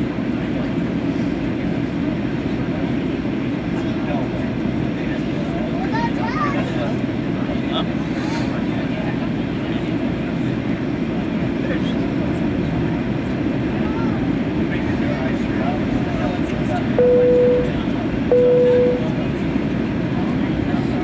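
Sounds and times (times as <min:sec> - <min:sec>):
airliner cabin engine rumble: 0:00.0 - 0:21.0
faint passenger voices: 0:00.0 - 0:21.0.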